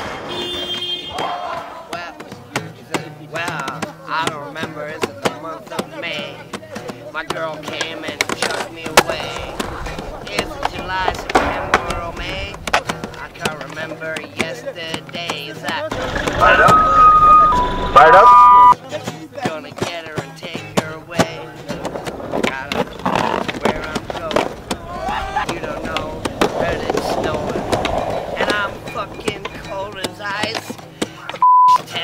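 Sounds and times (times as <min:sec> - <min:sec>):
vehicle horn blaring: 0:00.3 - 0:01.2, 0:16.4 - 0:18.7
man singing: 0:01.8 - 0:32.0
acoustic guitar strumming: 0:02.4 - 0:26.4
censor bleep: 0:16.4 - 0:18.8, 0:31.4 - 0:31.8
low rumble: 0:24.8 - 0:29.9.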